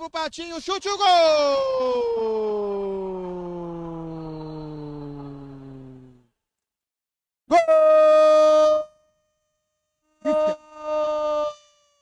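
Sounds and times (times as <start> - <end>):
commentator shouting goal: 0.0 - 3.0.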